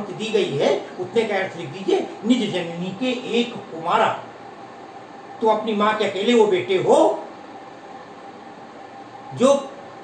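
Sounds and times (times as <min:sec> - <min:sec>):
man speaking: 0:00.0 - 0:04.3, 0:05.4 - 0:07.3, 0:09.3 - 0:09.8
faint constant hum: 0:00.0 - 0:10.0.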